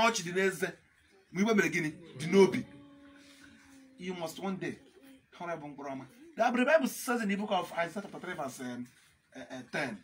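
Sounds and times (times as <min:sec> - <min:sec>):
man preaching: 0:00.0 - 0:02.8, 0:04.0 - 0:04.8, 0:05.4 - 0:10.0.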